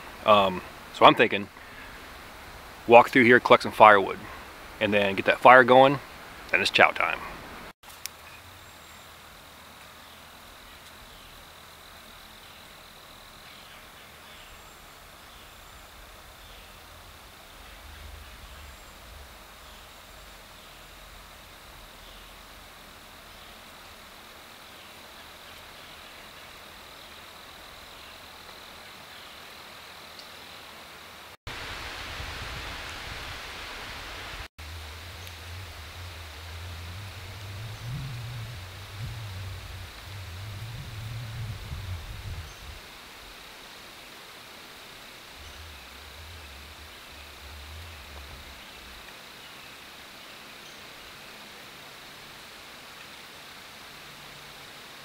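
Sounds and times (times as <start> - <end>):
steady hiss: 0.0 - 55.0
low rumbling on microphone: 15.5 - 22.9, 31.6 - 43.4, 45.0 - 49.1.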